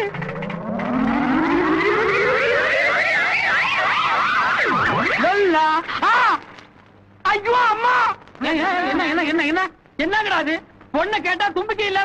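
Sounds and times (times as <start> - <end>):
rising siren-like tone with warble: 0.0 - 5.4.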